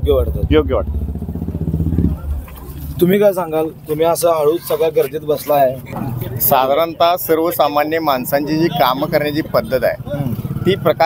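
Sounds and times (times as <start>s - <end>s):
motorcycle engine running: 0.0s - 4.6s, 7.3s - 11.0s.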